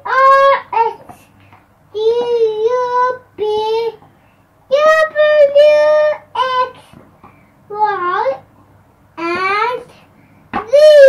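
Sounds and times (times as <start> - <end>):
young child singing wordlessly: 0.0 - 4.1, 4.7 - 7.0, 7.7 - 8.5, 9.2 - 11.0.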